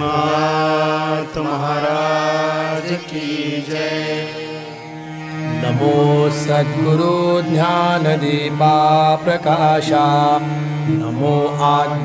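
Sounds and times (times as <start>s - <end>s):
devotional chanting: 0.0s - 12.0s.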